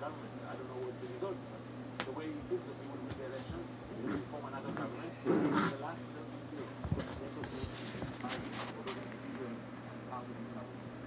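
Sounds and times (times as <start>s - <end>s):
television speech: 0.0s - 10.9s.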